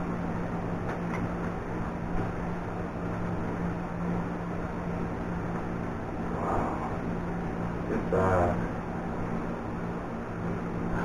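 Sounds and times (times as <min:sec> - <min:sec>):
electric fan humming: 0:00.0 - 0:11.0
fan air rushing: 0:00.0 - 0:11.0.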